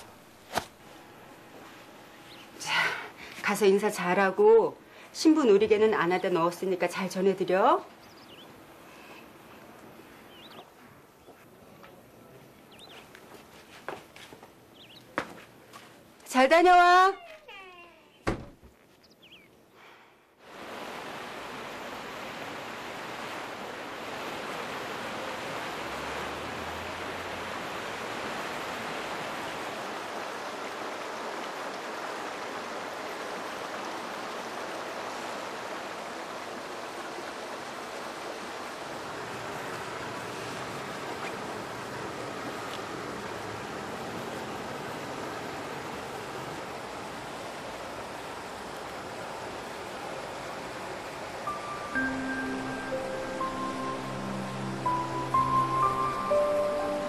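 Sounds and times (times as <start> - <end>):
fountain water rushing: 20.4 - 57.0.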